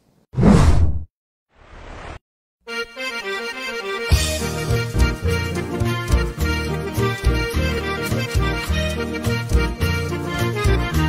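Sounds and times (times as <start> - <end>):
whoosh sound effect: 0.4 - 1.1.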